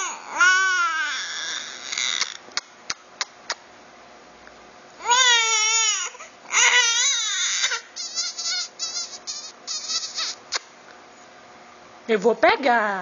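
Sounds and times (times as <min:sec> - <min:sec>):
infant crying: 0:00.0 - 0:02.4, 0:05.0 - 0:10.6.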